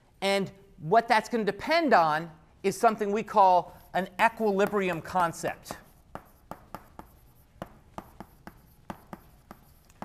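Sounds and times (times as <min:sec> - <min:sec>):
chalk tapping and scraping: 0:03.6 - 0:10.0.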